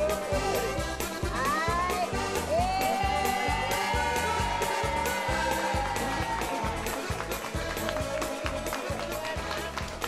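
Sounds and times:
music with driving beat: 0.0 - 10.0.

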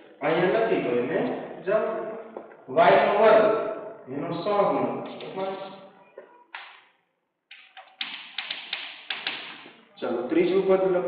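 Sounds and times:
chalk tapping on blackboard: 7.5 - 9.8.

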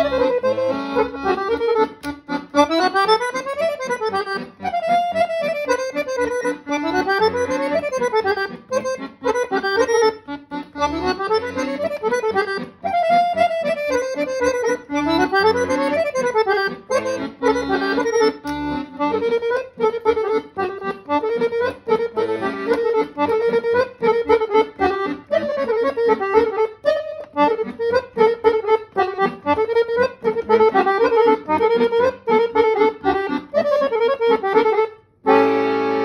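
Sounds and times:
button accordion melody: 0.0 - 36.0.

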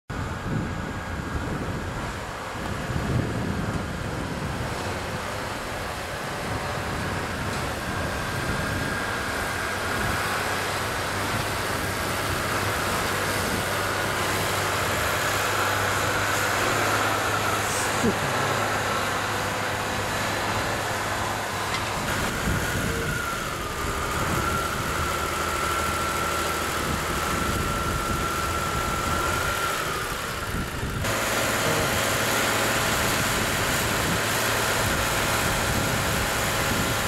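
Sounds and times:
sprayer engine droning: 0.1 - 37.0.

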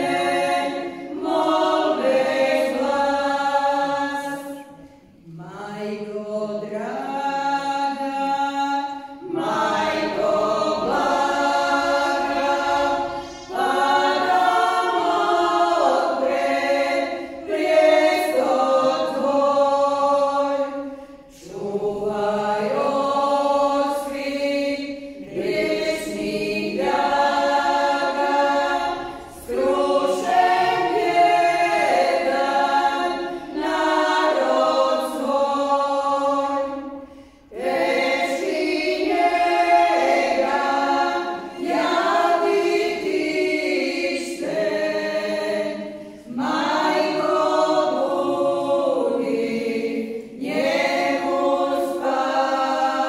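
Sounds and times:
women's choir singing a hymn: 0.0 - 53.0.

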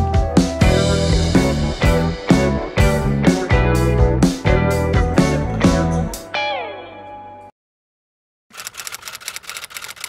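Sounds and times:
typewriter key clicks: 8.5 - 10.0.

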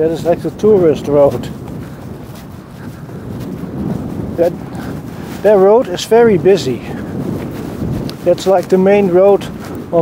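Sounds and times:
road traffic rumble: 0.0 - 10.0
wind buffeting microphone: 0.0 - 10.0.

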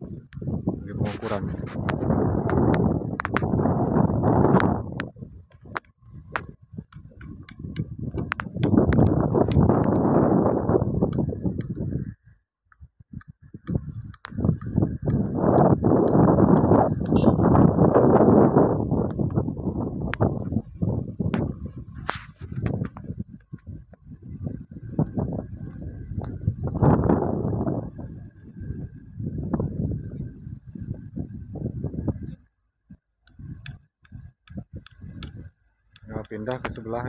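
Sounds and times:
wind buffeting microphone: 0.0 - 37.0
sharp clicks and knocks: 1.7 - 3.6, 4.6 - 10.0.

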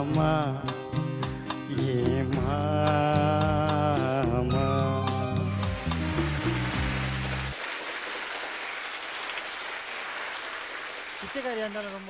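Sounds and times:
backing music with low notes: 0.0 - 7.6
audience applauding: 5.8 - 12.0.

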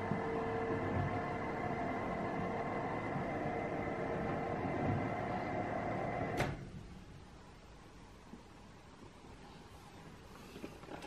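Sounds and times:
appliance humming with whining tones: 0.0 - 7.1.

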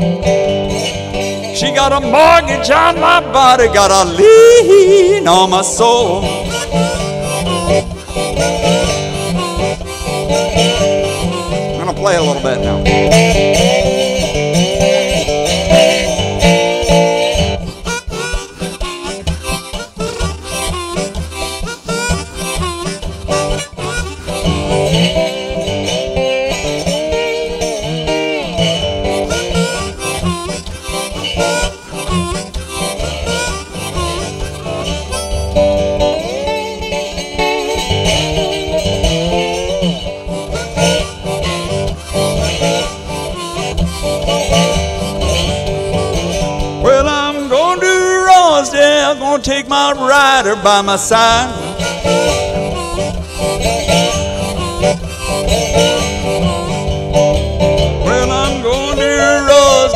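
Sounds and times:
blues harmonica solo: 0.0 - 59.9
slide resonator guitar: 0.0 - 59.9.

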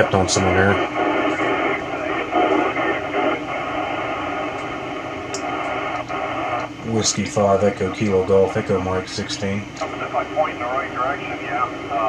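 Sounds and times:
faint voices over radio: 0.0 - 4.4, 5.4 - 12.0
narrow-band radio hiss: 0.0 - 12.0.

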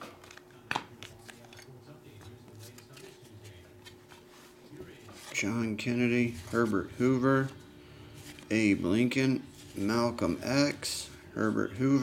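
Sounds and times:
faint steady hum: 0.1 - 12.0.

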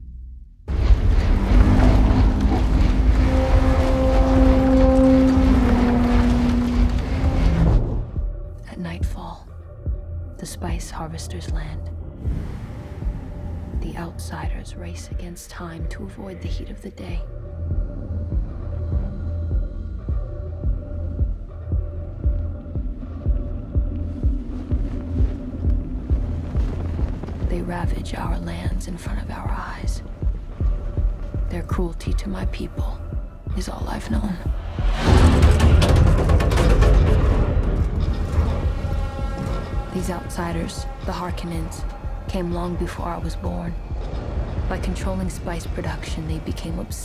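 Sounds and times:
steady droning tone: 0.0 - 8.7, 11.0 - 47.0
deep irregular throbbing pulse: 0.0 - 47.0
deep mechanical rumble: 0.0 - 47.0
low sustained hum: 0.0 - 47.0.

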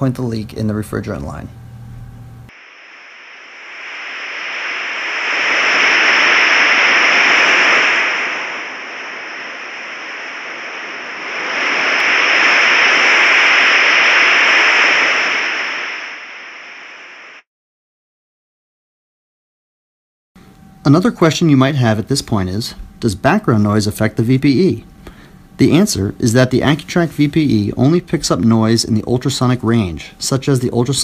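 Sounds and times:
rushing hiss: 2.5 - 17.4
thin steady high tone: 20.4 - 31.0.

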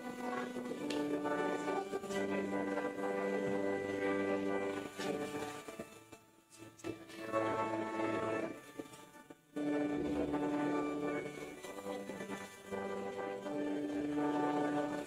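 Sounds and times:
group singing a hymn: 0.0 - 5.6.

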